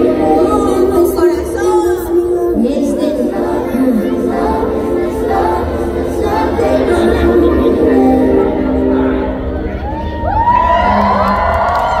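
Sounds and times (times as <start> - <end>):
audience cheering and whooping: 9.7 - 12.0.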